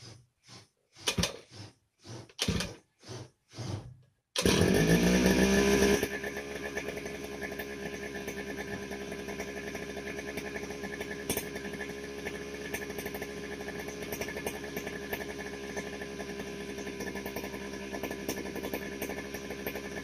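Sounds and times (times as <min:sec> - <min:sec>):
brush cutter engine starting: 0:01.0 - 0:03.2, 0:04.4 - 0:20.0.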